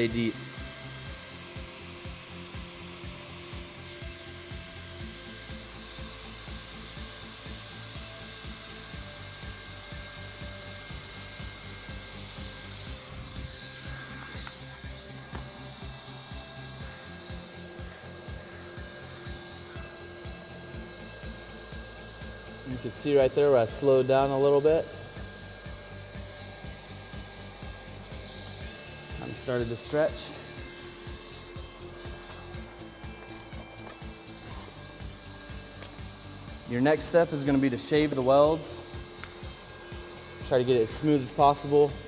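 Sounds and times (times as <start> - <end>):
hot-air welding gun blowing: 0.0 - 42.0.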